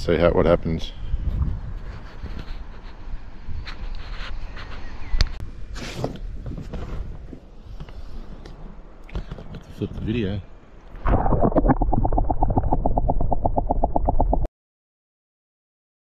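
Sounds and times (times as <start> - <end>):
wind rumbling on microphone: 0.0 - 10.3, 10.9 - 14.5.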